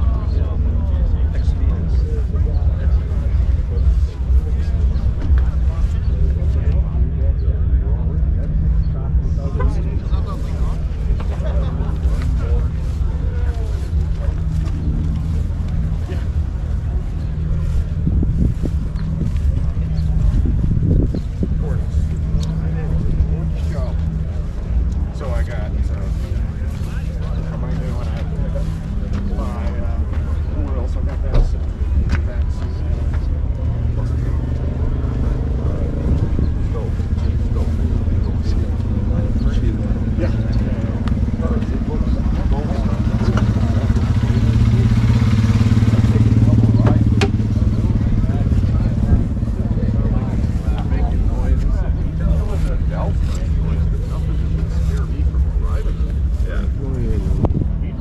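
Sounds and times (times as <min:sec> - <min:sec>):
background voices talking: 0:00.0 - 0:58.0
low engine drone: 0:00.0 - 0:58.0.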